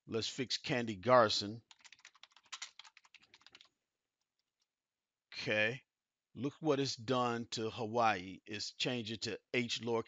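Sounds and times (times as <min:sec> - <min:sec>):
typing on computer keyboard: 0:01.7 - 0:03.7.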